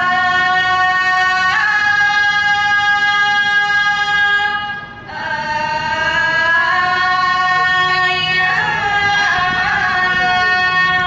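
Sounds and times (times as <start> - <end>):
reedy wind instrument melody: 0.0 - 11.0.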